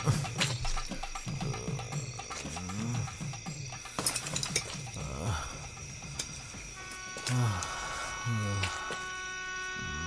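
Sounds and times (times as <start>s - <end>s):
low pulsing film score: 0.0s - 10.0s
metallic clinks: 0.3s - 7.4s.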